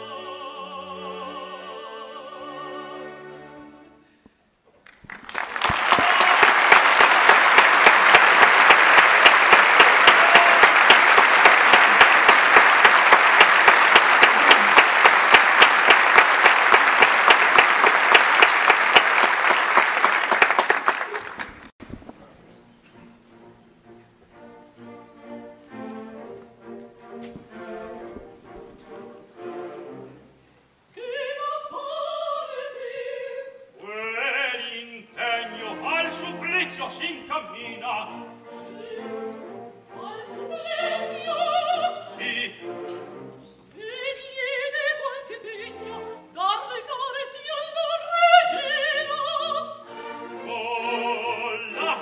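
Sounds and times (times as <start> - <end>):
soprano singing: 0.0 - 4.0, 30.9 - 52.0
quiet orchestral music: 0.0 - 4.6, 6.4 - 20.0, 21.8 - 52.0
audience applauding: 4.8 - 21.8.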